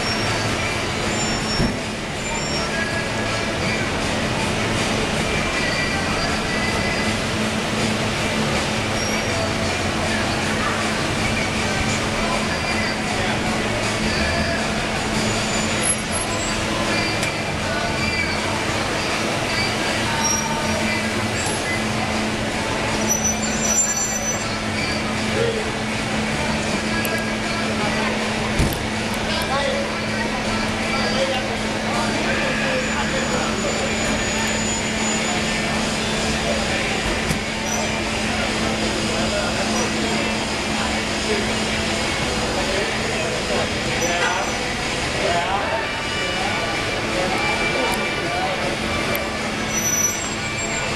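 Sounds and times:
people chattering: 0:00.0 - 0:50.9
traffic noise: 0:00.0 - 0:50.9.

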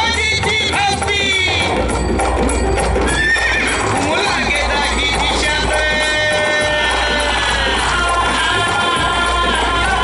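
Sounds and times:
horse whinnying: 0:03.0 - 0:04.1.

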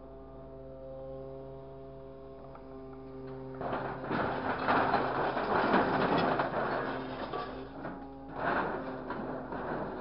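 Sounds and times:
scrap metal clattering and scraping: 0:03.3 - 0:10.0.

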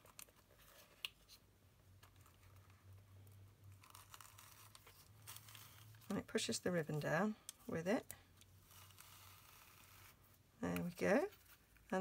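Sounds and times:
faint box and ribbon rustling: 0:00.0 - 0:12.0.

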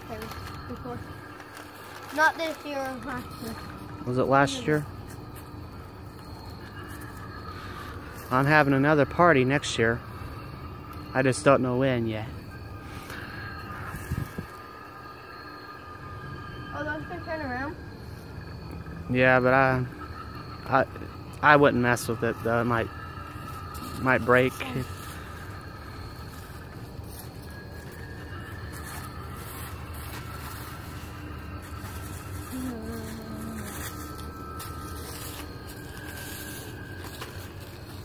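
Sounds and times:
eerie held electronic tones: 0:00.0 - 0:38.0.

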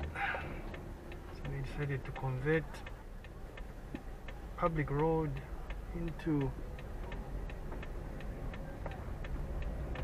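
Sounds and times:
engine and tyres humming: 0:00.0 - 0:10.0
turn signal ticking: 0:00.0 - 0:10.0.

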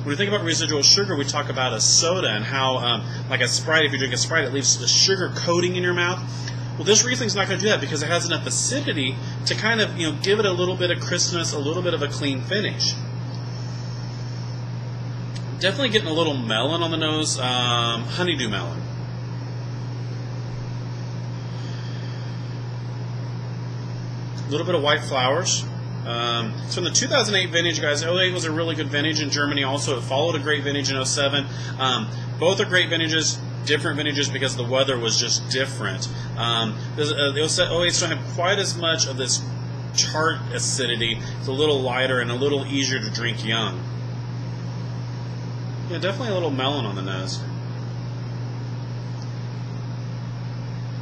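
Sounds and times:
man speaking: 0:00.0 - 0:13.1, 0:15.4 - 0:18.9, 0:24.4 - 0:43.9, 0:45.9 - 0:47.5
low hum: 0:00.0 - 0:51.0.

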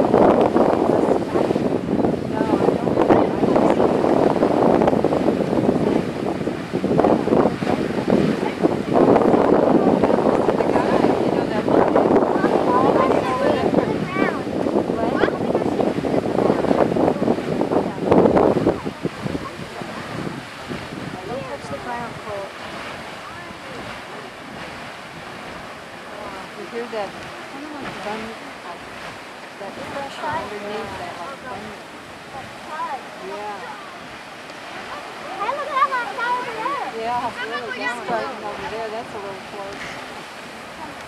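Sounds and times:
geyser water rushing and splashing: 0:00.0 - 0:41.0.

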